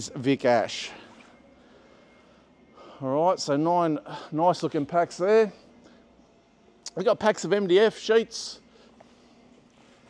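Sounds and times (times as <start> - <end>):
intake of breath: 1.0 - 3.0.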